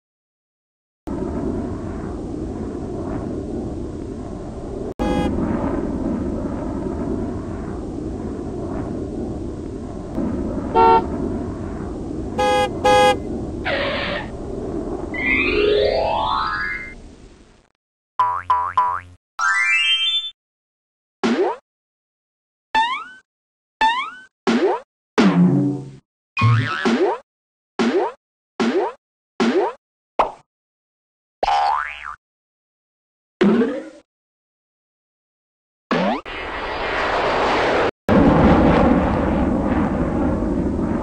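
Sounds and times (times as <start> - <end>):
steady low rumble: 1.1 - 15.5, 38.1 - 41.0
cartoon car horn toots: 5.0 - 5.3, 10.8 - 11.0, 12.4 - 13.2
cartoon boing: 12.4 - 13.2, 26.4 - 27.2, 31.4 - 32.2
rising whistle-like glide: 15.0 - 17.0.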